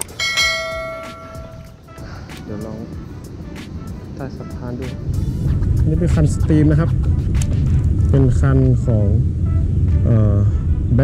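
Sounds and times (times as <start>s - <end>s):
bright bell ding: 0.0s - 1.8s
background music with steady beat: 0.0s - 11.0s.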